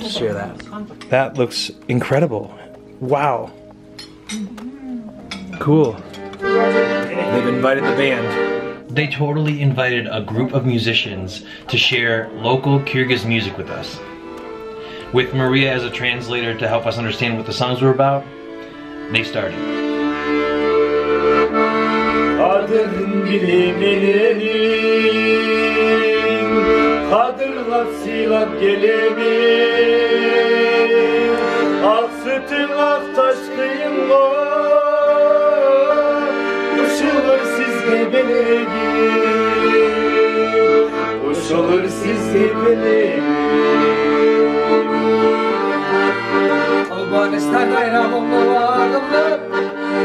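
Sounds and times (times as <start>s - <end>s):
accordion playing held chords: 0.0s - 50.0s.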